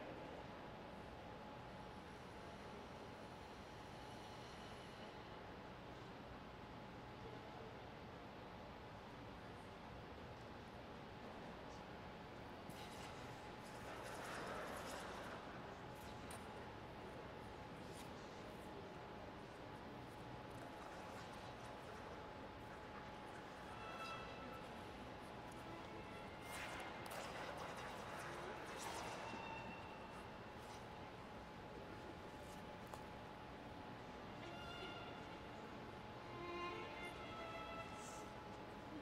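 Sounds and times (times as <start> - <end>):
faint steady hum: 0.0 - 39.0.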